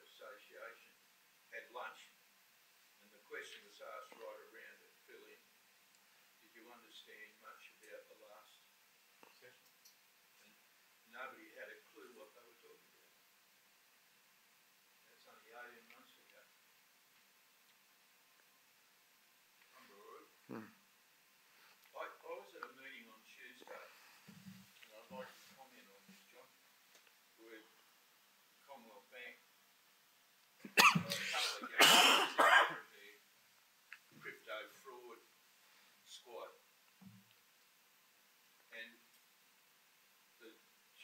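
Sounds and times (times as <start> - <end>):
man coughing: 30.7 - 32.8.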